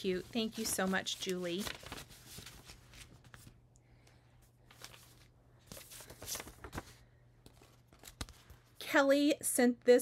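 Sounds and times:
rustling of paper cards: 0.0 - 8.8.

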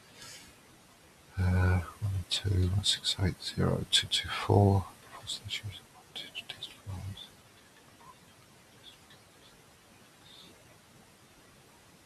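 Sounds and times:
man muttering: 1.4 - 5.7.

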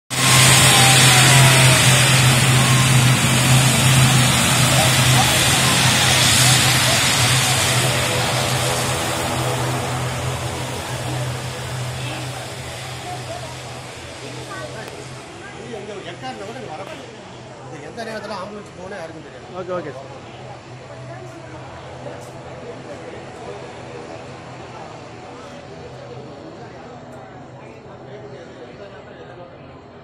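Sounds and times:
low propeller hum: 0.1 - 17.9, 18.6 - 28.0
turboprop airliner roar: 0.1 - 28.8.

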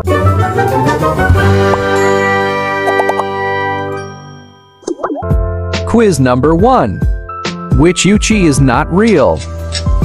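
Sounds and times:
bell-like logo chime: 3.9 - 4.8.

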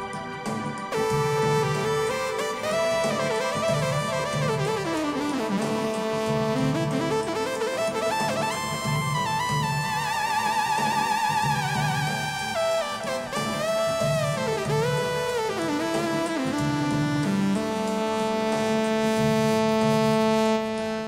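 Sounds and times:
rhythmic synthesizer backing: 0.0 - 21.0
synthesizer lead melody: 0.0 - 21.0.

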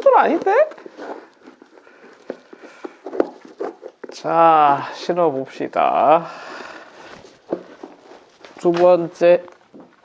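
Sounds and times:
laces rustling: 0.0 - 10.0.

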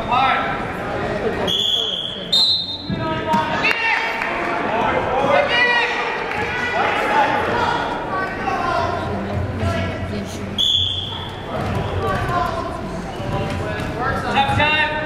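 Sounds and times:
referee's whistle blast: 1.5 - 3.0, 10.6 - 11.2
spectators and coaches shouting: 2.9 - 10.0.

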